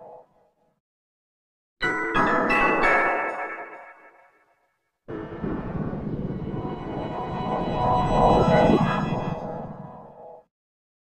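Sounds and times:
low rumble: 5.1 - 10.2.

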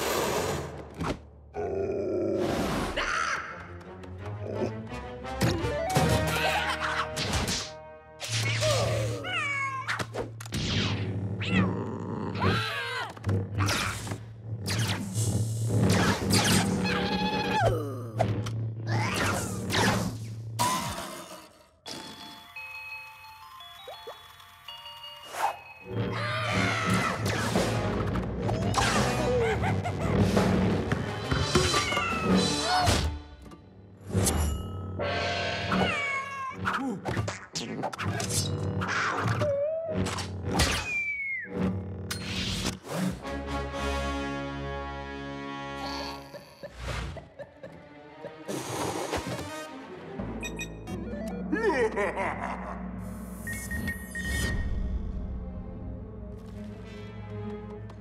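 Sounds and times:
background music: 1.6 - 21.0, 21.8 - 58.0
cartoon music: 50.3 - 52.6.

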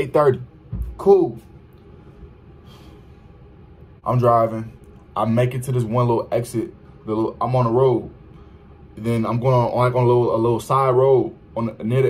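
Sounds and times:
faint breath drawn in: 1.9 - 3.4.

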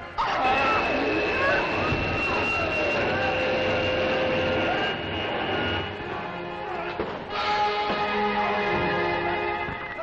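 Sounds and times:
rushing hum with high whine: 0.0 - 9.6
sliding electronic tones: 0.1 - 6.5.

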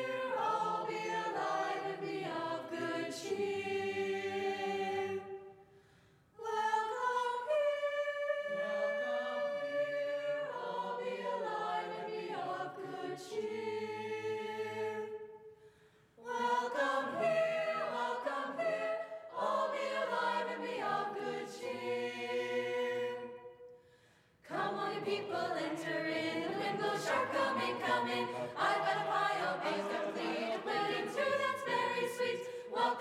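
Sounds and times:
mixed choir singing unaccompanied: 0.0 - 5.6, 6.4 - 15.4, 16.2 - 23.7, 24.5 - 33.0.

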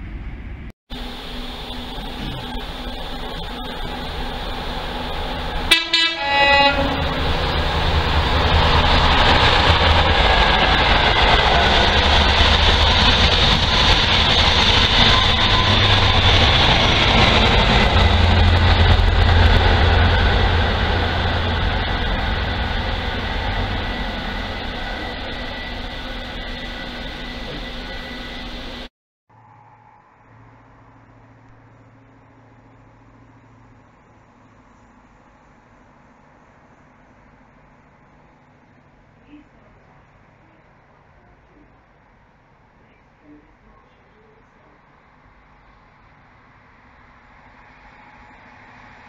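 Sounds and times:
train rushing past: 0.0 - 30.9, 47.2 - 49.0
train horn blast: 5.7 - 7.4.

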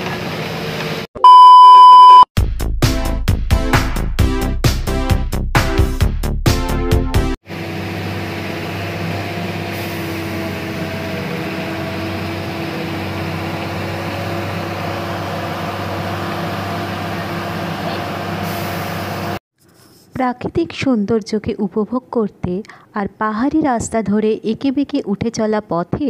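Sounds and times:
bus engine and road noise: 0.0 - 1.1, 7.5 - 19.4.

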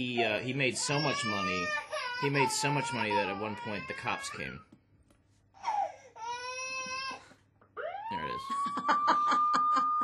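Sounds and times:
man imitating police siren: 7.8 - 8.7.

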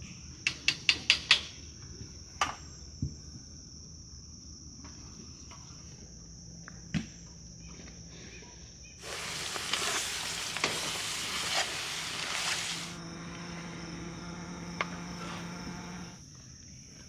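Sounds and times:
crickets chirping: 0.0 - 17.0
meat sizzling in a pot: 9.0 - 13.0
metal spatula scraping: 9.0 - 13.0
low steady hum: 12.1 - 17.0.

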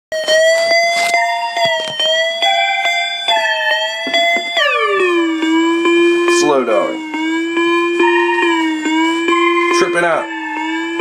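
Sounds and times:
sustained synth lead: 0.2 - 11.0.

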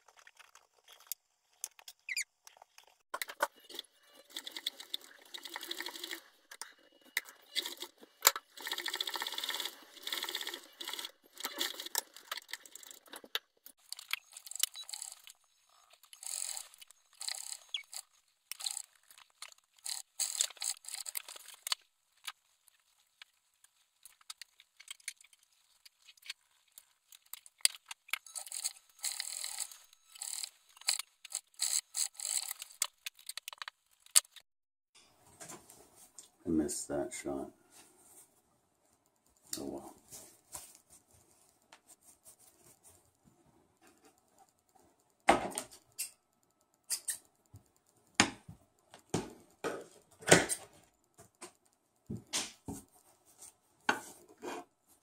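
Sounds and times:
sewing machine stitching: 7.3 - 13.0, 16.0 - 18.9
fabric rustling and scraping: 39.7 - 43.3.

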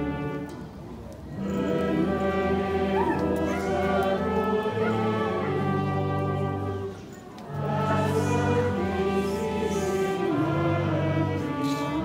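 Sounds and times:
choir singing sacred music: 0.0 - 0.6, 1.3 - 12.0.

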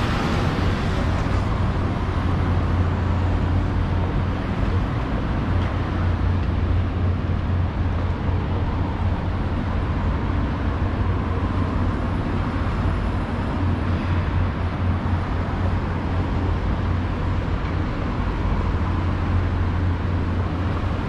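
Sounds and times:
road traffic rumble: 0.0 - 21.0.

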